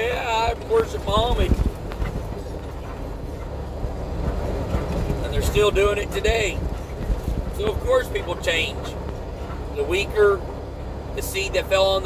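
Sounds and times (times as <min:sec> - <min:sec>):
road and engine rumble in vehicle: 0:00.0 - 0:12.0.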